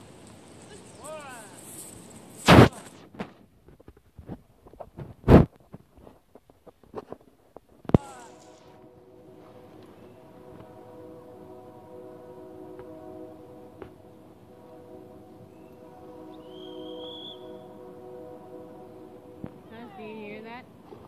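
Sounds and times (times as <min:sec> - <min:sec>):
horn sounding a long chord: 0:07.9 - 0:21.0
short high chirp: 0:15.5 - 0:17.6.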